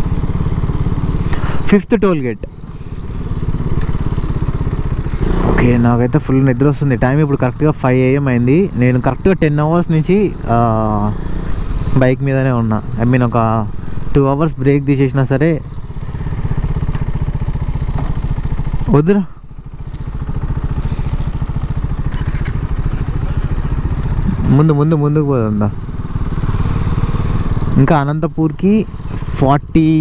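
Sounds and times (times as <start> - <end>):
motorcycle engine running: 0.0 - 30.0.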